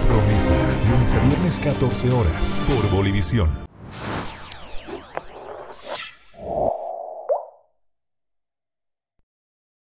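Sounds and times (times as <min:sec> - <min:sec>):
logo animation tone: 0:03.8 - 0:07.0.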